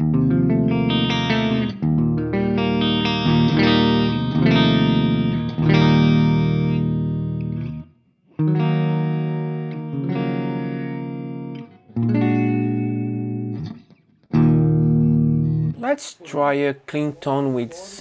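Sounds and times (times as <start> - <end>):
electric guitar chords strummed: 0.0 - 15.8.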